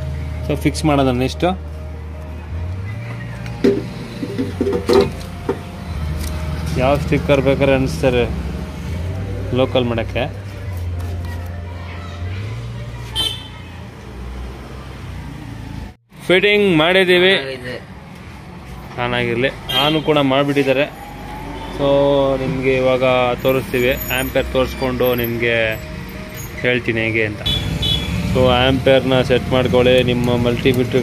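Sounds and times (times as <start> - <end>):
vehicle engine rumbling: 0.0 - 16.8, 17.9 - 31.0
man talking: 28.3 - 31.0.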